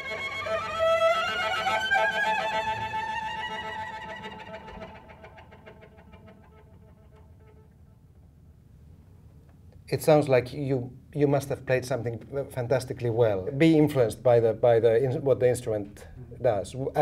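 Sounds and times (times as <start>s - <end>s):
cello trill: 0.0s - 8.0s.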